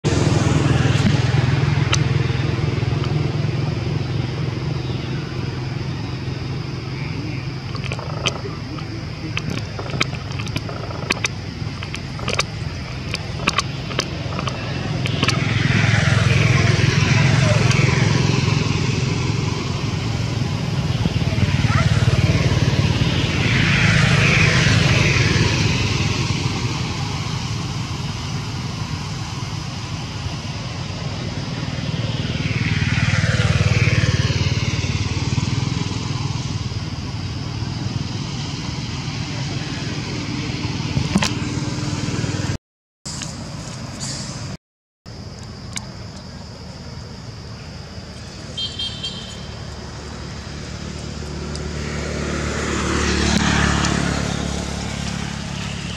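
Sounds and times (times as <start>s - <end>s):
motor vehicles passing by: 0.0s - 44.6s, 46.0s - 55.9s.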